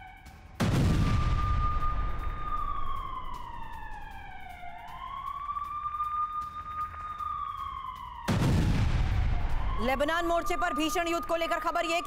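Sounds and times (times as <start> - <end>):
siren wailing: 0.0 - 12.0.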